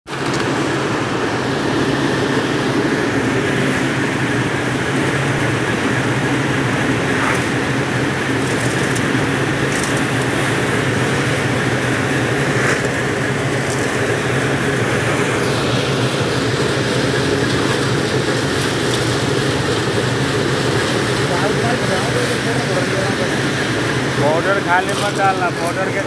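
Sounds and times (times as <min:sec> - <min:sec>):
grinding machine humming: 0:00.1 - 0:26.0.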